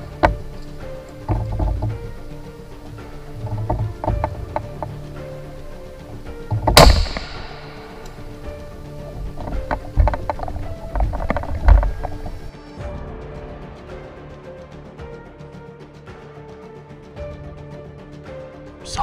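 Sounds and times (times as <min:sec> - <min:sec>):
rifle and gear knocking: 0:00.0 - 0:12.5
background music: 0:00.0 - 0:19.0
rifle shot: 0:06.8 - 0:08.0.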